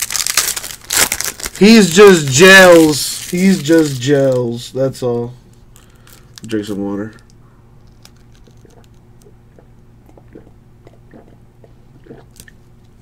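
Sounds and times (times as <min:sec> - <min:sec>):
steady low hum: 0:00.0 - 0:13.0
small mouth clicks: 0:08.0 - 0:11.4
person drinking and swallowing: 0:08.2 - 0:12.6.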